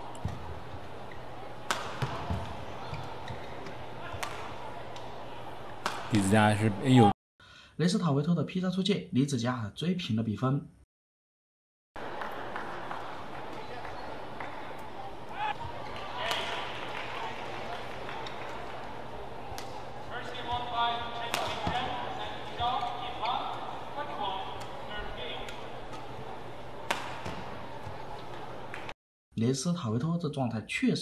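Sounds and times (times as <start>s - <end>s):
arena background hum: 0.0s - 7.1s, 12.0s - 28.9s
racket hitting shuttlecock: 1.6s - 2.5s, 4.1s - 5.1s, 21.3s - 21.8s, 26.9s - 27.5s.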